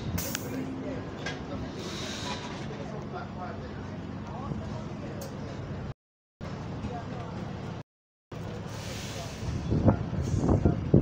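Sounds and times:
diesel bus engines idling: 0.0 - 7.8, 8.4 - 11.0.

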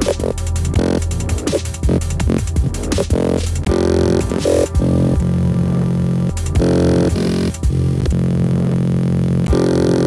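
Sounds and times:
dubstep electronic music: 0.0 - 10.0.

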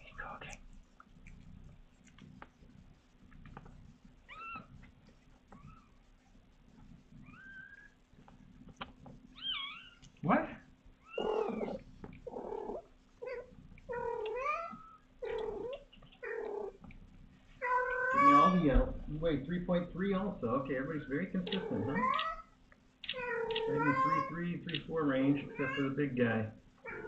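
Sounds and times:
newborn kittens mewing: 3.4 - 6.0, 7.2 - 8.0, 9.3 - 16.9, 17.6 - 19.2, 20.8 - 27.0.

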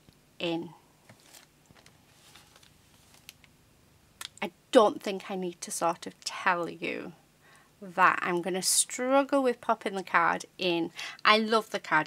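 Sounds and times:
paper rustling: 1.0 - 3.5
plastic packet being handled: 1.0 - 3.5.

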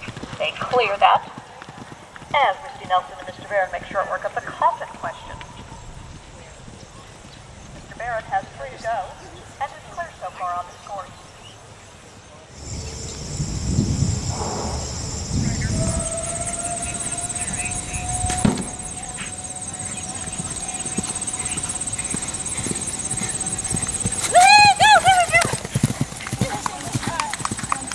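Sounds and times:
horse hoofbeats galloping on turf: 0.0 - 5.2, 18.5 - 27.9
loud wavering call: 12.6 - 25.6.

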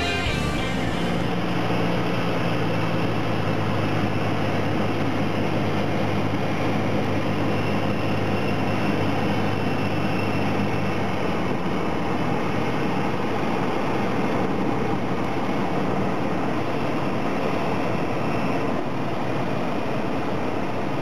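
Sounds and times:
propeller engine droning: 0.0 - 21.0.

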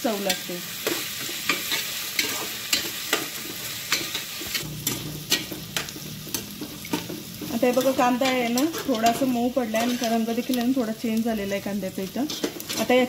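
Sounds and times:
onions sizzling in hot oil: 0.0 - 13.0
metal spatula scraping pot: 0.3 - 10.6, 12.1 - 13.0.

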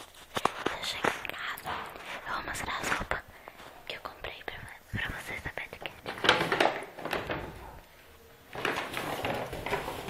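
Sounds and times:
person whispering: 0.4 - 6.1.

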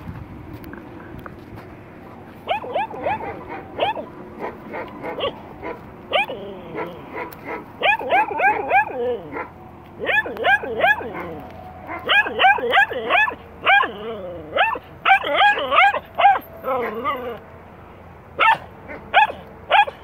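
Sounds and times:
small dog barking: 2.4 - 17.3, 18.4 - 20.0.

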